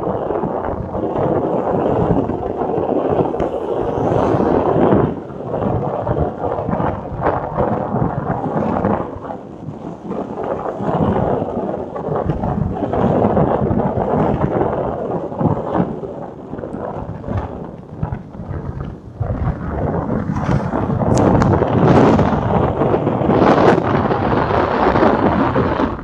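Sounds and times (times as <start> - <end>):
road noise: 0.0 - 26.0
wind buffeting microphone: 0.0 - 26.0.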